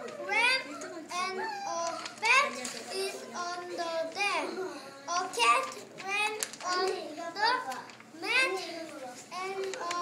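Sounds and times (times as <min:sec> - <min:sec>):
child reading aloud: 0:00.0 - 0:10.0.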